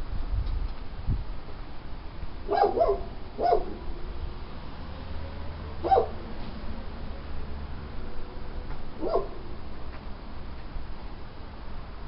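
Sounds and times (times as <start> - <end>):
dog barking: 2.5 - 3.8, 5.8 - 6.2, 9.0 - 9.4.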